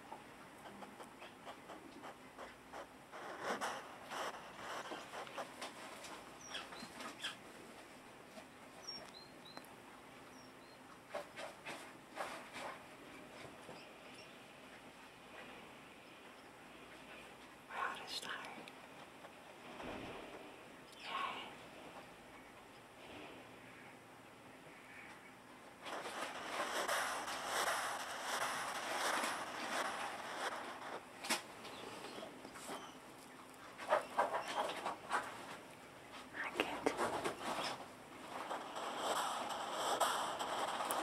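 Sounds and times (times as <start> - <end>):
hedgehog snorting: 1.7 - 5.6, 25.9 - 31.0.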